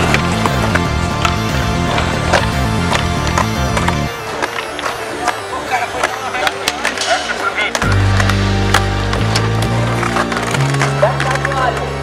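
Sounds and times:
heavy bass line: 0:00.0 - 0:04.1, 0:07.8 - 0:11.1
background music: 0:00.0 - 0:12.0
skateboard clacks on concrete: 0:00.0 - 0:12.0
skateboard tail and wheels knocking: 0:00.0 - 0:12.0.

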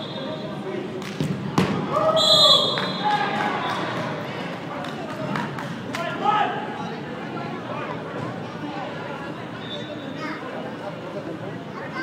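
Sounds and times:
referee's whistle blast: 0:00.0 - 0:00.4, 0:02.2 - 0:03.1
ball thud on court: 0:01.2 - 0:01.8.

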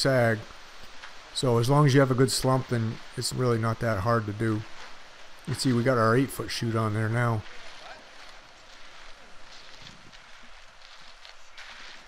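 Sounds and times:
light scrapes of raking: 0:07.3 - 0:12.0.

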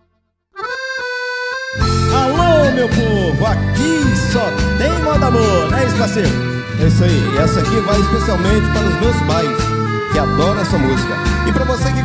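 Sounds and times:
accordion chord: 0:00.0 - 0:12.0
band playing: 0:00.7 - 0:12.0.

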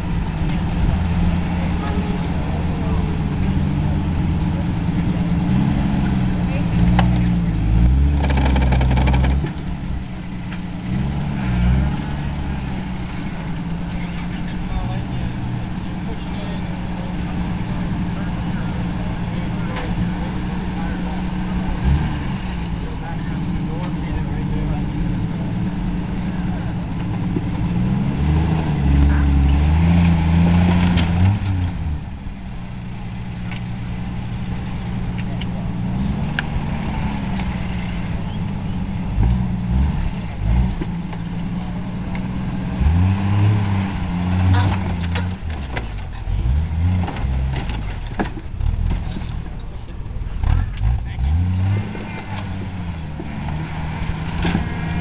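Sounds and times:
engine idling and revving: 0:00.0 - 0:55.0.

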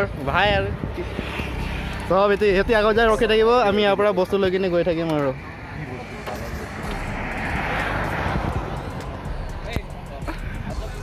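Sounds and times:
low engine rumble: 0:00.0 - 0:11.0
vehicle passing by: 0:00.0 - 0:11.0.

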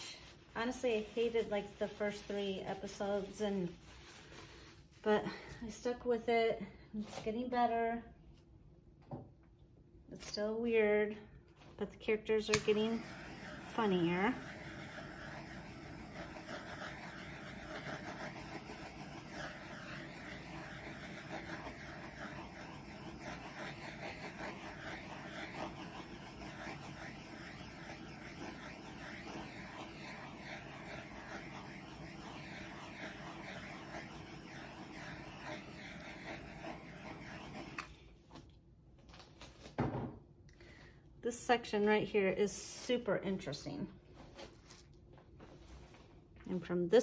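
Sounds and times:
torch hissing: 0:12.5 - 0:37.9.

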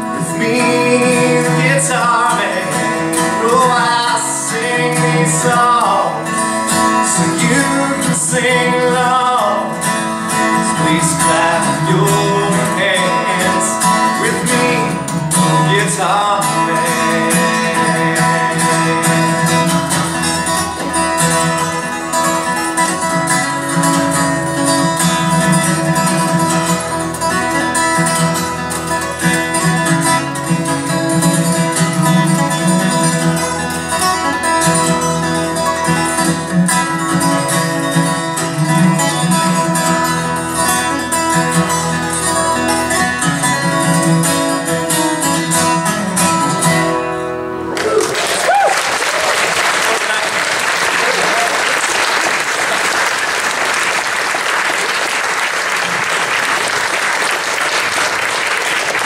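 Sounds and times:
acoustic guitar picking: 0:00.0 - 0:48.0.

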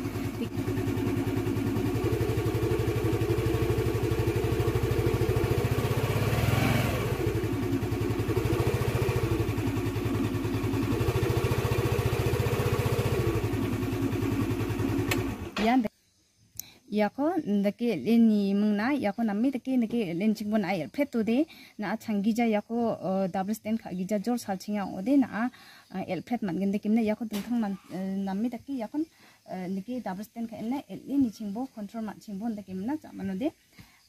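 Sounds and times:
scooter engine running: 0:00.0 - 0:15.9.

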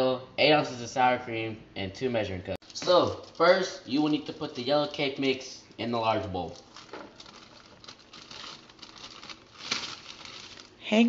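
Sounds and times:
plastic bag crinkling: 0:02.6 - 0:04.6, 0:06.4 - 0:11.0.

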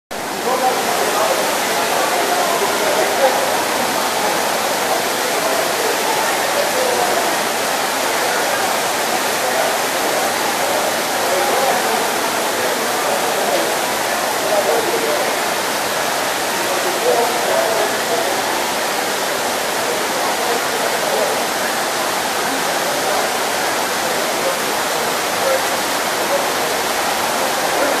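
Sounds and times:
heavy rain hissing: 0:00.1 - 0:28.0.

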